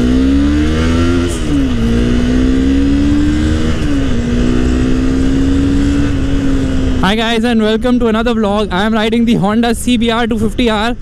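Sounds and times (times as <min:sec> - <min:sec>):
wind rush: 0:00.0 - 0:08.8
motorcycle engine accelerating: 0:00.0 - 0:10.4.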